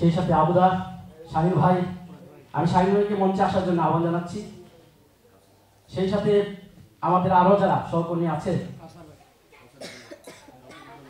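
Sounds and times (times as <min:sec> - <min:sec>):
person coughing: 0:09.8 - 0:11.0.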